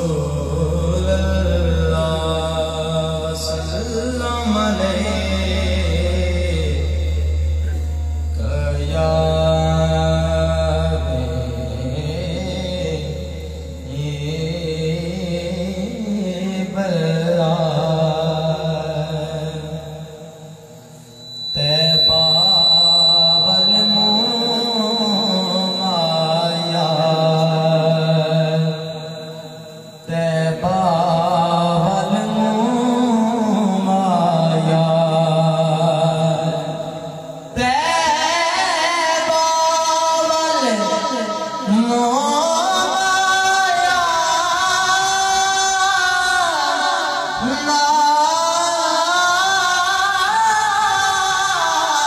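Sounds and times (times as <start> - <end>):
man chanting: 0.0 - 52.0
steady low hum: 0.0 - 52.0
thin steady high tone: 0.0 - 52.0.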